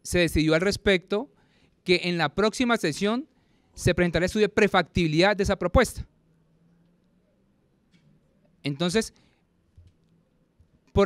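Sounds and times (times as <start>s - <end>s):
man speaking: 0.0s - 1.3s, 1.9s - 6.1s, 8.6s - 9.1s.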